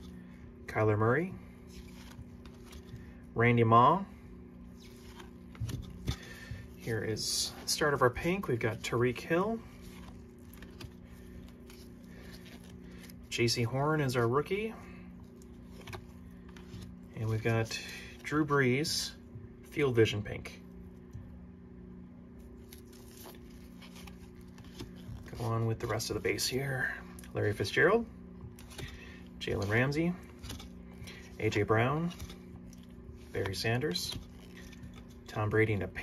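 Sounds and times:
handling trading cards: 0:00.0 - 0:36.0
steady low hum: 0:00.0 - 0:36.0.

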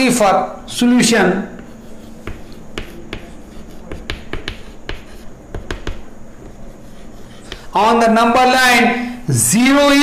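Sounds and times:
chalk tapping and scraping on blackboard: 0:01.5 - 0:08.0.

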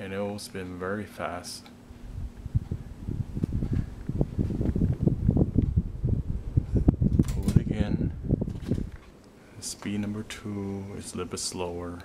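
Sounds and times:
ceiling fan wind noise: 0:00.0 - 0:12.0.

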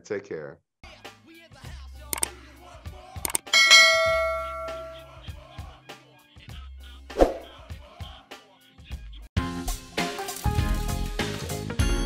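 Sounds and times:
quick clicks: 0:02.1 - 0:02.3, 0:03.2 - 0:03.5
bright bell chime: 0:03.5 - 0:05.1.

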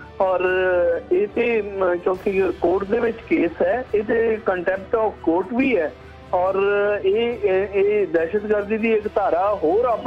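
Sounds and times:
man speaking: 0:00.2 - 0:10.0.

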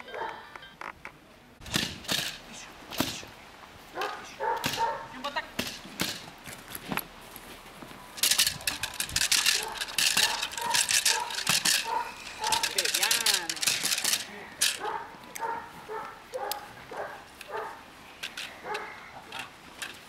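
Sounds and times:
dog tugging bite sleeve crackling: 0:08.2 - 0:17.8.

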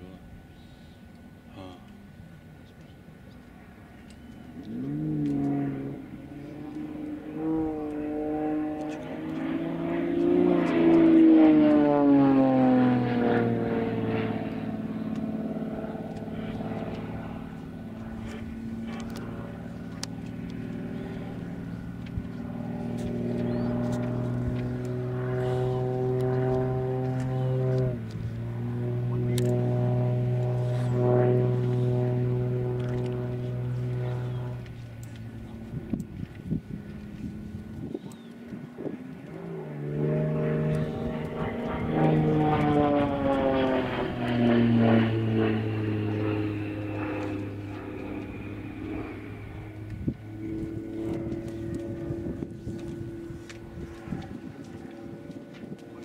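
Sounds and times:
propeller plane engine droning overhead: 0:00.0 - 0:56.0.

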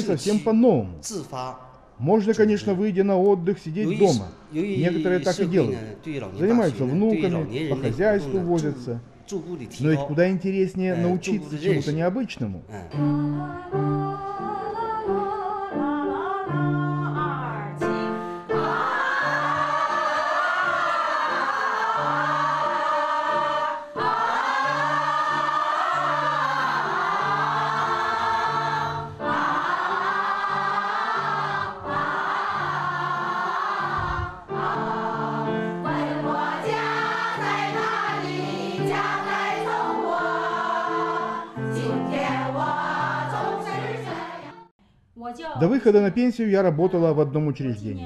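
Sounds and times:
women's choir singing: 0:11.0 - 0:11.9, 0:13.0 - 0:44.7.

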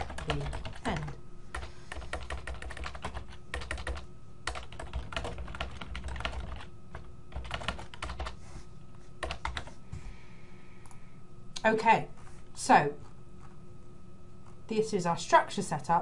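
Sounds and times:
computer keyboard typing: 0:00.0 - 0:08.4, 0:09.2 - 0:09.8.

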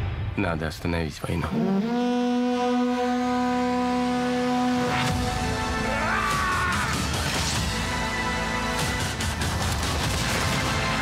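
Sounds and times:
long low horn blast: 0:01.4 - 0:06.1.

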